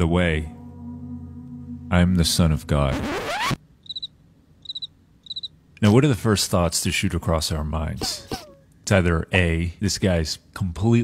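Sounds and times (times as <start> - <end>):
cricket chirp sound effect: 0.6 - 5.5.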